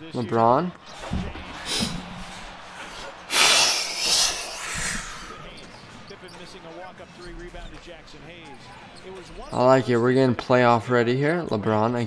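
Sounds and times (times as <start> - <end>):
person exhaling loudly: 3.3 - 5.3.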